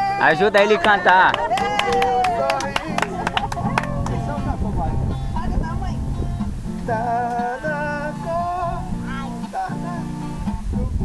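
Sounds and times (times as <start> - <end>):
people's voices: 0.0 - 6.1
acoustic guitar strummed: 0.0 - 11.0.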